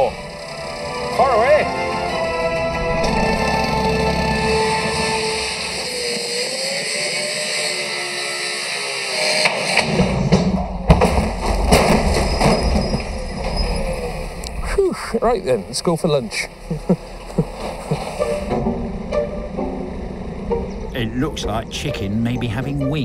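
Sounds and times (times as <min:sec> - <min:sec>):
background music: 0:00.0 - 0:06.4, 0:16.4 - 0:23.0
cut-off saw cutting metal: 0:00.0 - 0:10.2
irregular knocks and bangs: 0:09.9 - 0:13.6.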